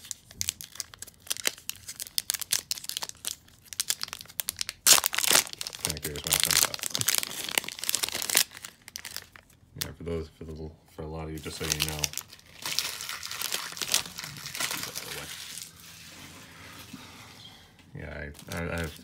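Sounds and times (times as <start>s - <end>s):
plastic wrapper crinkling: 0.0s - 10.0s, 11.4s - 16.1s, 18.3s - 19.0s
plastic wrapper tearing: 0.0s - 10.0s, 11.4s - 15.7s, 18.4s - 19.0s.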